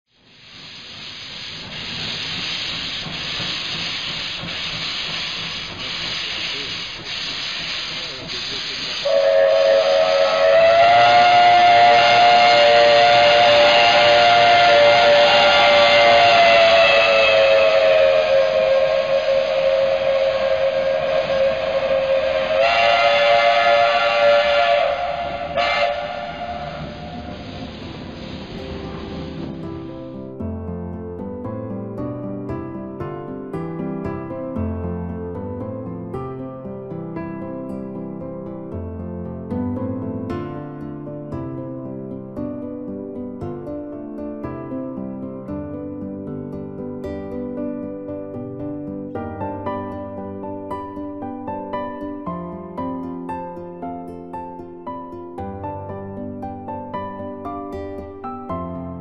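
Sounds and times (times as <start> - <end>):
steam locomotive hissing: 0.1 - 30.4
two-tone train whistle blasts: 2.1 - 30.2.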